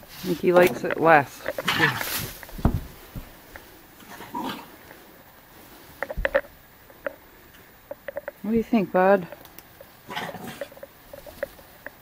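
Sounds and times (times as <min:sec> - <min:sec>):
horse sound: 0:05.9 - 0:11.5.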